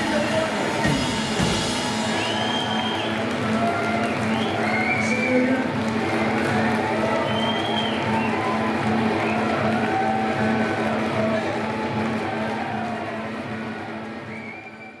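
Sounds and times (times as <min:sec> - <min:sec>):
crowd cheering: 0:00.0 - 0:15.0
live music with steady pulse: 0:00.0 - 0:15.0
whistling from crowd: 0:01.6 - 0:06.3, 0:07.0 - 0:09.8, 0:14.2 - 0:15.0.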